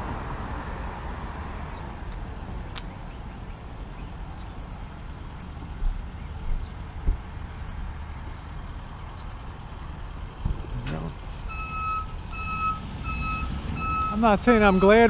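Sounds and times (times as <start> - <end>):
low rumble of engines and traffic: 0.0 - 15.0
vehicle reversing alarm beeping: 11.3 - 15.0.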